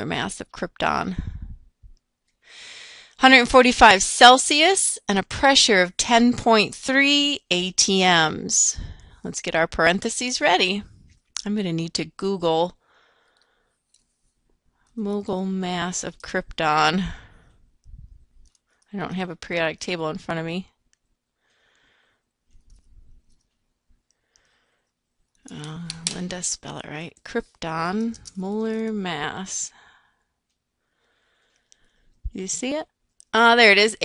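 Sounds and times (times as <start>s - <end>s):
woman speaking: 0.0s - 1.6s, 3.2s - 12.8s, 15.0s - 17.3s, 18.9s - 20.7s, 25.4s - 29.9s, 32.3s - 34.0s
person speaking: 25.4s - 29.8s.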